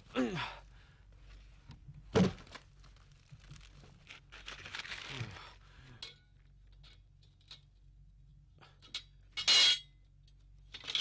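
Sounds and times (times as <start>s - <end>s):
rustling in bamboo baskets: 2.3s - 5.7s.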